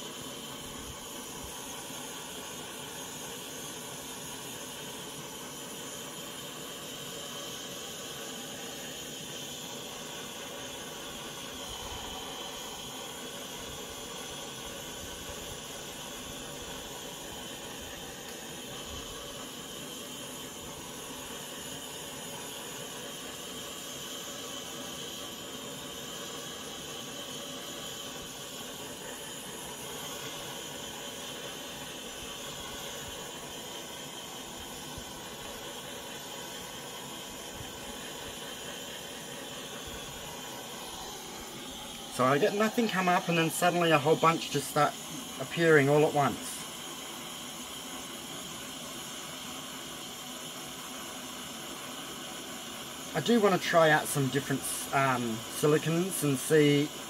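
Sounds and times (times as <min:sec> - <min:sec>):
torch hissing: 0:00.0 - 0:57.0.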